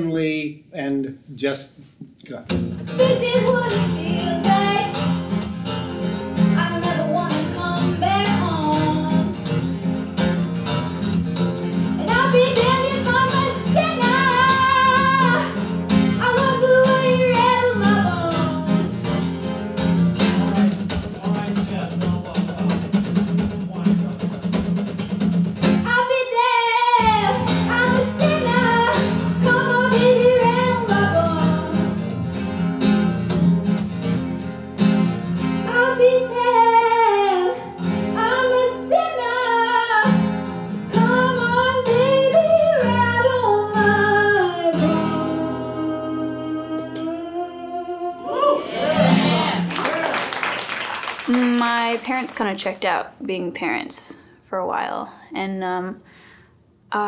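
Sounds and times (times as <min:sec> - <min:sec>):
acoustic guitar strummed: 0:02.5 - 0:49.8
woman singing: 0:02.9 - 0:05.1, 0:06.5 - 0:09.4, 0:12.0 - 0:19.0, 0:25.8 - 0:32.1, 0:35.6 - 0:40.3, 0:40.9 - 0:49.4.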